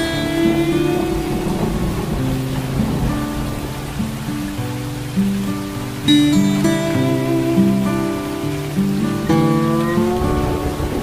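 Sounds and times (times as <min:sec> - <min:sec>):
slow acoustic guitar music: 0:00.0 - 0:11.0
steady rain: 0:00.0 - 0:11.0.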